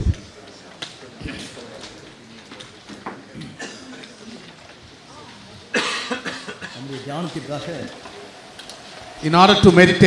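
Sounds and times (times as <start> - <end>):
man coughing: 3.4 - 4.1, 5.7 - 6.9
man speaking: 9.2 - 10.0.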